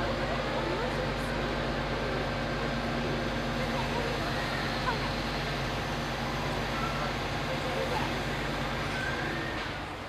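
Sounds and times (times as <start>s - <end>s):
diesel crane engine droning: 0.0s - 10.0s.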